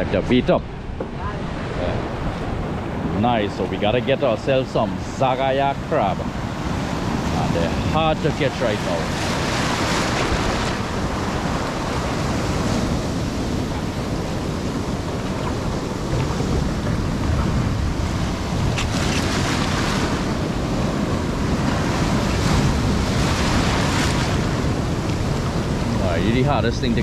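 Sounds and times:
wind buffeting microphone: 0.0 - 27.0.

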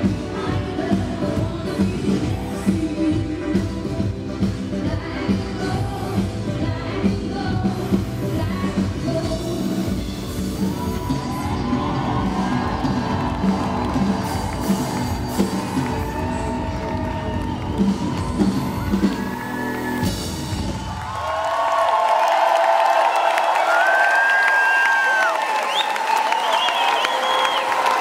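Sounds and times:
live band playing pop song: 0.0 - 20.9
crowd cheering and whooping: 10.3 - 28.0.

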